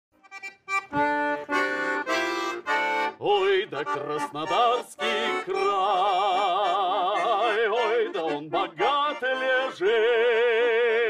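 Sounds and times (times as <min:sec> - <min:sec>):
accordion chords: 0:00.2 - 0:11.0.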